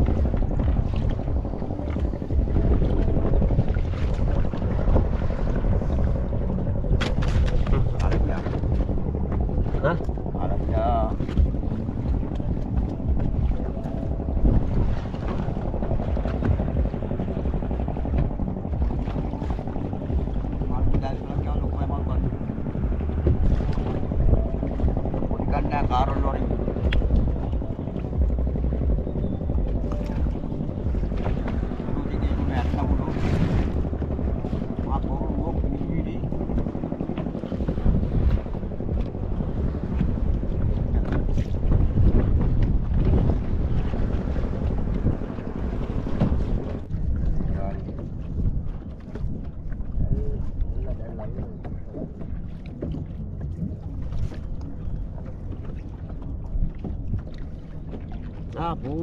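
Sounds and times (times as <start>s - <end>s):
water washing against boat hull: 0.0s - 59.0s
wind on microphone: 0.0s - 59.0s.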